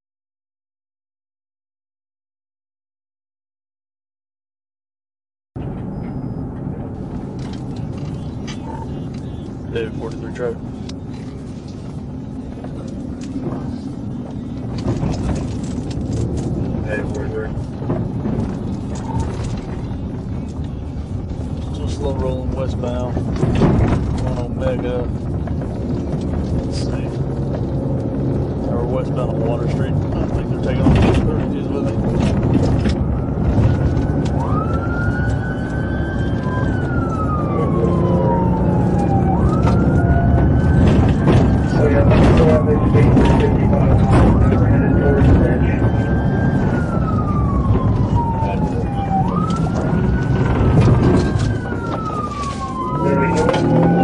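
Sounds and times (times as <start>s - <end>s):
car engine and road noise: 5.6s - 54.0s
police siren wailing: 6.4s - 54.0s.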